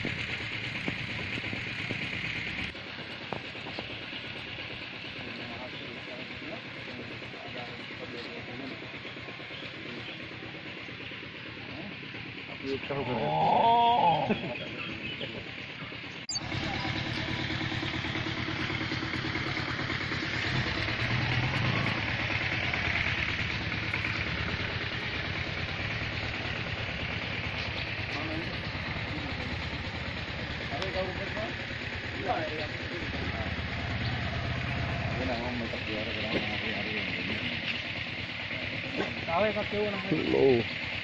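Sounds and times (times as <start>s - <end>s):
steady rushing outdoor noise: 0.0s - 41.0s.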